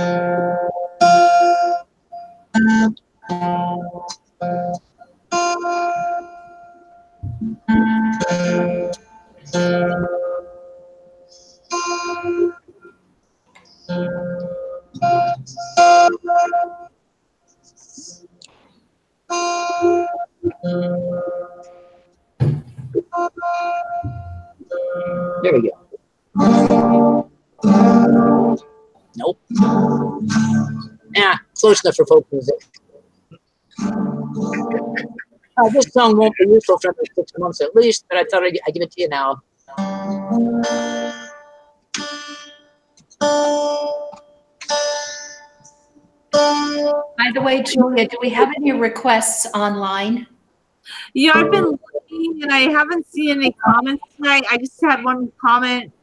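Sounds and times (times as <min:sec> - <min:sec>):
guitar strings plucked: 0:00.0 - 0:12.9, 0:13.5 - 0:16.9, 0:19.3 - 0:33.0, 0:33.8 - 0:39.1, 0:39.7 - 0:49.3, 0:51.2 - 0:55.9
guitar chords strummed: 0:00.0 - 0:13.0, 0:13.6 - 0:16.9, 0:17.6 - 0:33.0, 0:33.8 - 0:38.8, 0:39.7 - 0:49.9, 0:51.2 - 0:56.0.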